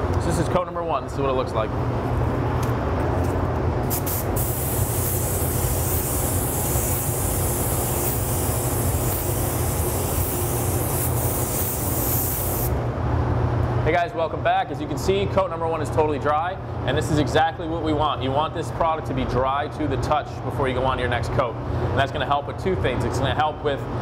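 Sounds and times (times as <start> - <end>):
ventilation hum: 0.0 - 24.0
spray gun hissing: 3.9 - 12.8.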